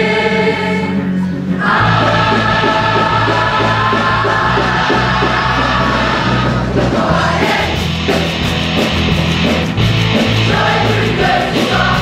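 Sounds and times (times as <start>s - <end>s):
bass and drums playing: 0.0s - 12.0s
choir singing rock song: 0.0s - 12.0s.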